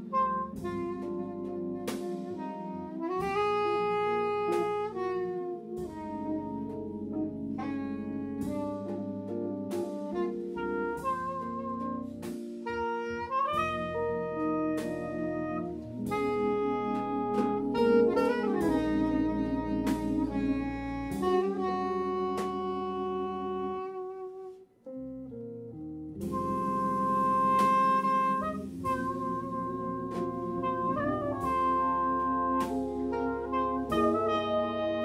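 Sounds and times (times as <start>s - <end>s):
drum kit with cymbal strikes: 0.0s - 6.8s, 7.6s - 23.1s, 26.2s - 35.0s
soprano saxophone melody: 0.0s - 25.5s, 26.2s - 35.0s.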